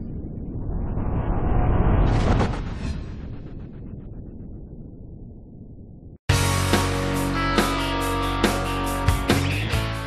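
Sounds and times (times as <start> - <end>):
low noisy rumble building to burst: 0.0 - 6.2.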